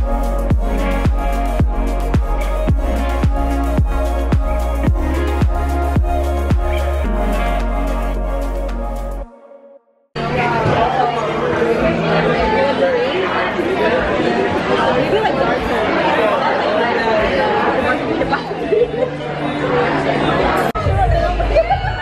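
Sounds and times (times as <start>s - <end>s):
people chatting and laughing: 0.0s - 9.2s, 10.2s - 22.0s
excited voices: 10.3s - 22.0s.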